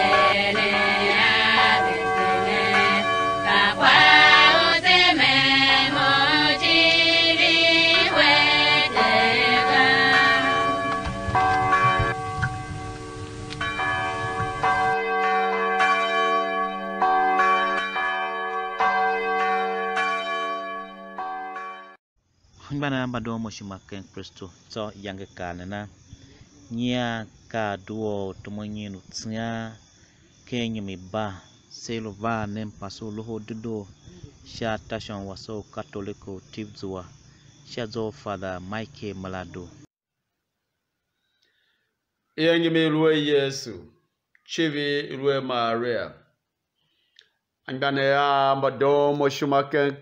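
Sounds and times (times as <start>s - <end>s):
bells ringing: 0.0s - 5.0s, 5.8s - 22.0s.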